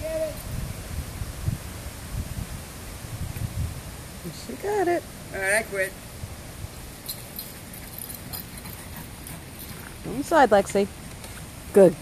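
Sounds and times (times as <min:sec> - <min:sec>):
outdoor background noise: 0:00.0 - 0:12.0
faint ticks and rustles: 0:07.0 - 0:11.6.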